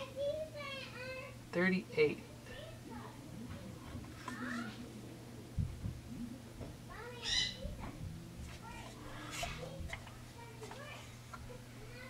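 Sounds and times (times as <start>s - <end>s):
steady low hum: 0.0s - 12.0s
high-pitched vocal calls: 7.1s - 7.7s.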